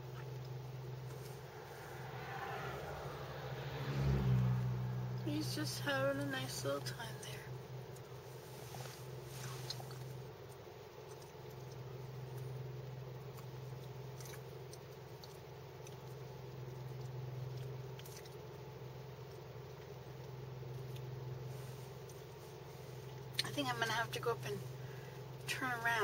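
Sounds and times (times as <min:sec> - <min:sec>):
car engine idling: 0:00.0 - 0:14.1.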